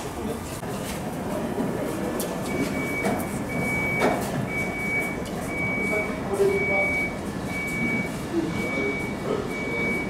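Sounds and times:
electronic beeper: 2.5s - 10.0s.

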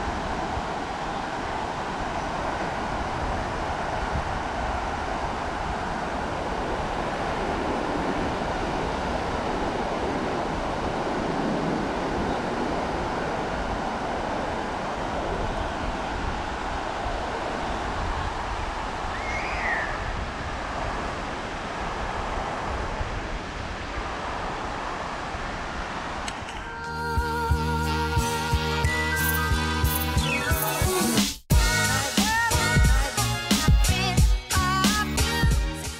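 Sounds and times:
surf breaking on a beach: 0.0s - 26.8s
wind rumbling on microphone: 0.0s - 27.6s.

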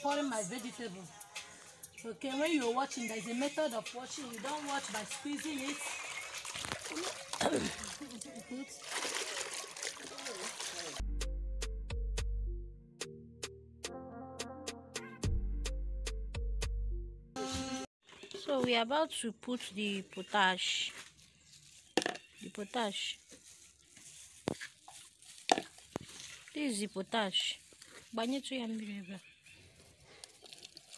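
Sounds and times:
hands swishing vegetables in water: 4.1s - 11.0s, 23.2s - 28.7s
music with deep bass: 11.0s - 17.4s.

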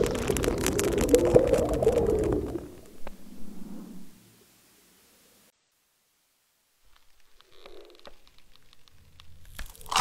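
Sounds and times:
bubbling and crackling in water: 0.0s - 3.2s.

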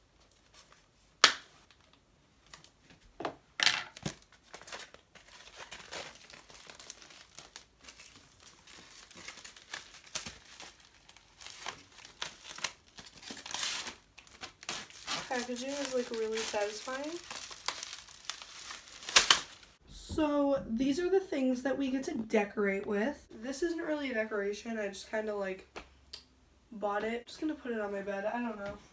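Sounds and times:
plastic packaging crinkling: 3.9s - 19.8s.

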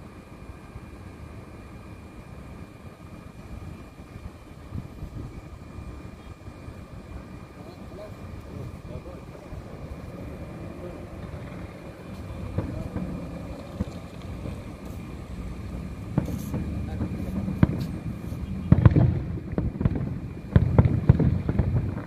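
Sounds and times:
distant fireworks rumbling: 0.4s - 22.0s
sharp firework bang: 12.2s - 14.7s, 16.1s - 22.0s.

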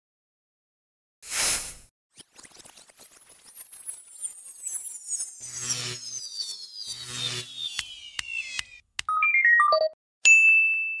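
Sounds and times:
bell-like ding ringing: 10.2s - 11.0s.

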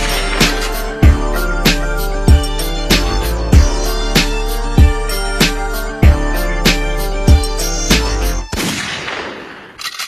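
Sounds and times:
hip-hop beat: 0.0s - 8.5s.

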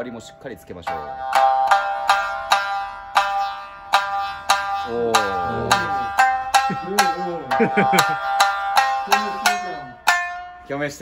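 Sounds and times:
plucked string with buzzing bridge: 0.9s - 10.7s.

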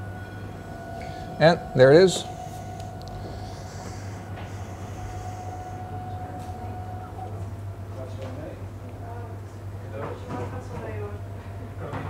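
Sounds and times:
low electrical hum: 0.0s - 11.9s
faint machinery whine: 0.0s - 12.0s.

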